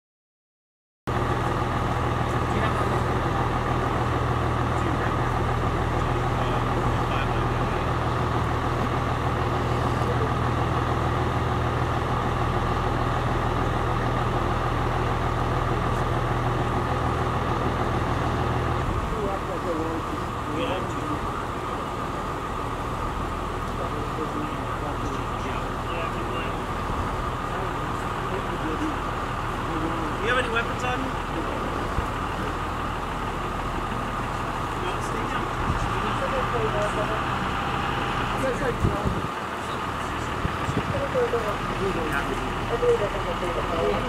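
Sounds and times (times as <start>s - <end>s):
constant higher tone: 1.1s - 44.0s
vehicle engine idling: 1.1s - 44.0s.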